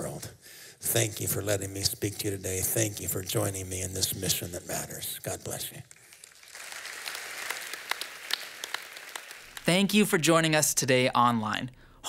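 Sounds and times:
audience applauding: 6.0s - 10.0s.

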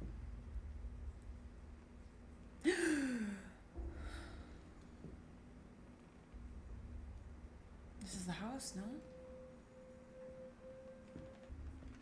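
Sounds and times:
faint steady pure tone: 0.0s - 12.0s.

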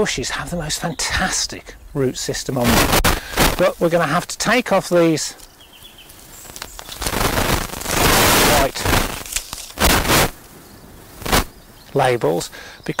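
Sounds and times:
labels crackling as pulled off: 2.7s - 10.6s, 11.2s - 11.5s.

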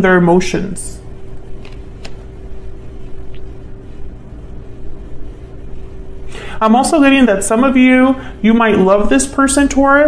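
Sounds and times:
faint steady hum: 0.0s - 10.0s
low background rumble: 0.0s - 10.0s.

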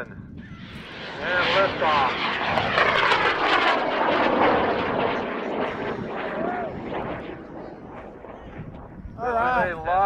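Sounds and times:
rocket motor roaring: 0.5s - 9.0s.

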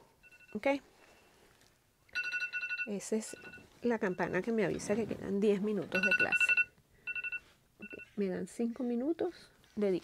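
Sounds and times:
bell-like alarm ringing: 2.1s - 4.6s, 6.0s - 8.2s.

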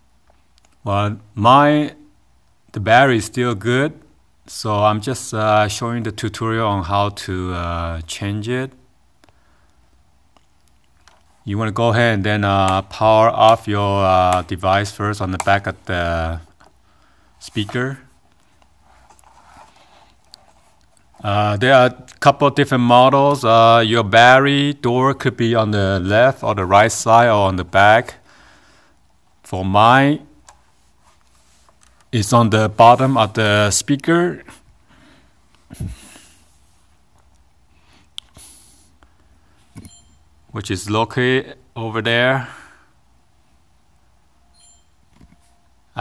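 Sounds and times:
hands handling plastic speaker: 10.3s - 11.4s, 12.5s - 21.2s, 30.3s - 32.2s.

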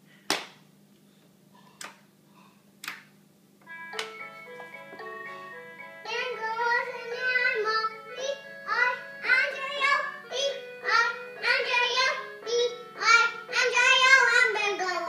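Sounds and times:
toy keyboard electronic tune: 3.7s - 14.9s
child singing into microphone: 6.1s - 15.0s.

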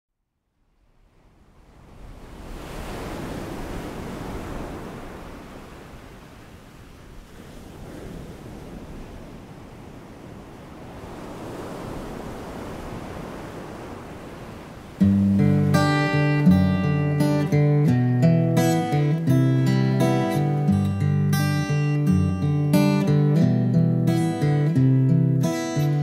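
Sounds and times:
sea waves washing in: 0.7s - 23.1s.

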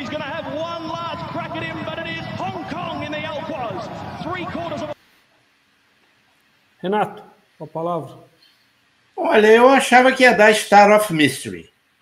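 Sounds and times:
race commentator speaking fast: 0.0s - 5.0s
steady background noise: 0.0s - 12.0s.

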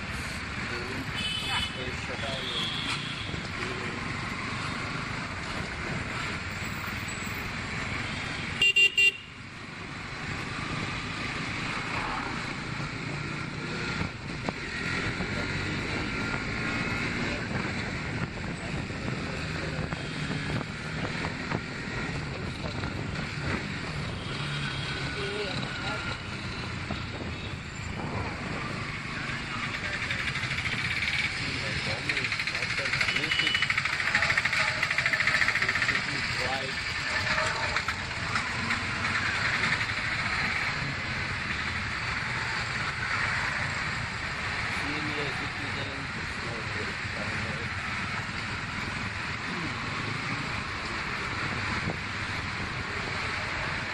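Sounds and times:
road and wind noise: 0.0s - 53.9s
surrounding traffic: 0.0s - 53.9s
motorcycle engine: 0.6s - 53.9s
vehicle horn toot: 1.2s - 3.4s, 8.6s - 9.3s.

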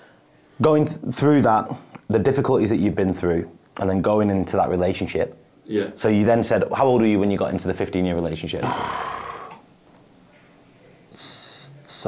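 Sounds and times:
person sighing: 8.6s - 9.6s.

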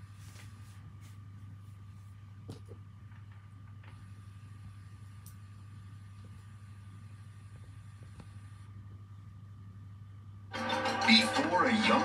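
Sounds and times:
faint low hum: 0.0s - 10.6s
trailer music: 10.5s - 12.0s.

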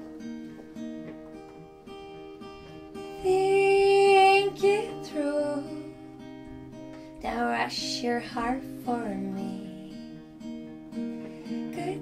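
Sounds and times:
acoustic guitar strummed chords: 0.0s - 12.0s
woman singing: 3.0s - 6.1s, 7.2s - 10.2s, 11.4s - 12.0s.

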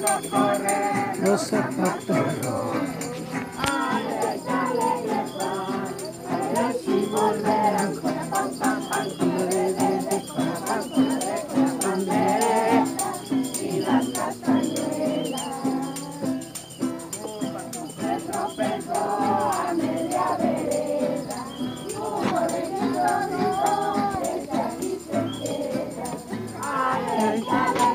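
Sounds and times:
group singing a carol: 0.0s - 27.9s
rattles shaken to a beat: 0.0s - 27.9s.

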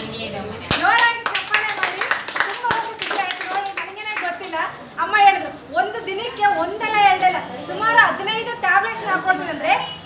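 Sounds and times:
hands clapping: 0.7s - 4.6s.

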